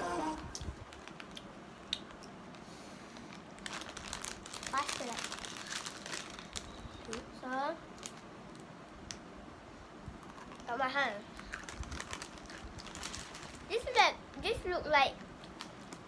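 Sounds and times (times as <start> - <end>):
plastic snack packet crinkling: 0.9 - 1.5, 3.1 - 9.2, 10.2 - 10.7, 11.3 - 14.0, 15.4 - 16.0.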